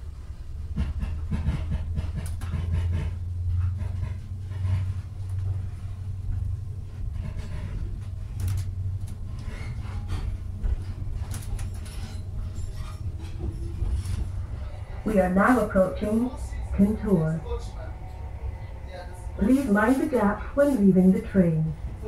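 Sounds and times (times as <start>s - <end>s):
diesel engine: 0.0s - 22.0s
train rumble inside coach: 0.0s - 22.0s.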